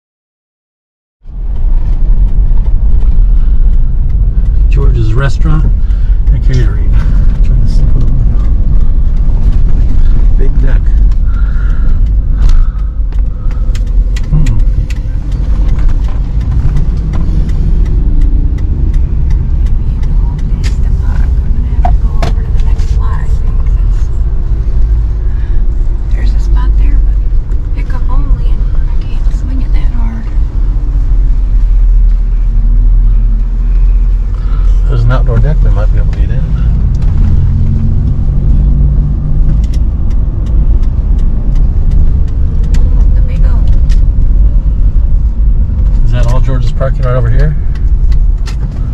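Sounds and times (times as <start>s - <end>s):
car engine and road rumble: 1.2s - 48.9s.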